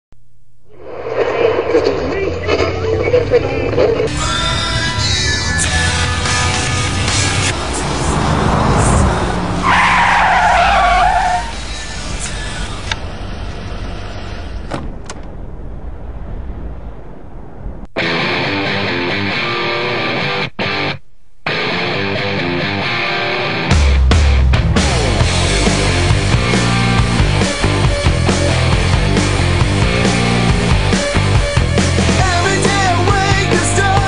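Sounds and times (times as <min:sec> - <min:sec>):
vehicle engine rumbling: 0:00.4 - 0:18.0, 0:24.0 - 0:34.0.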